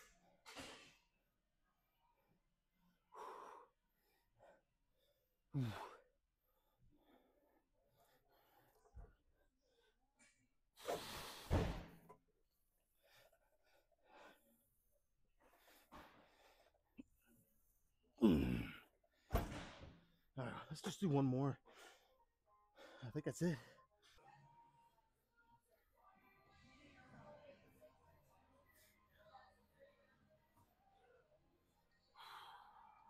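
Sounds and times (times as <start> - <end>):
man breathing hard: 3.0 - 10.0.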